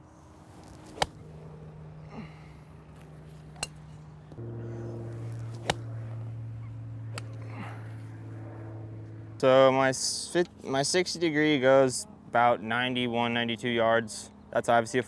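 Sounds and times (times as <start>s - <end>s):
steady low hum: 0.0s - 15.0s
golf club striking ball: 0.6s - 1.3s, 3.5s - 4.0s, 5.3s - 6.3s, 7.1s - 7.4s.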